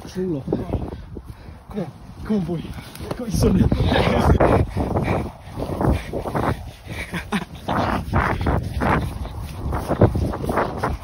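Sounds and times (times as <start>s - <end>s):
person panting: 0.6s - 1.7s, 3.6s - 11.0s
person laughing breathlessly: 3.7s - 10.2s.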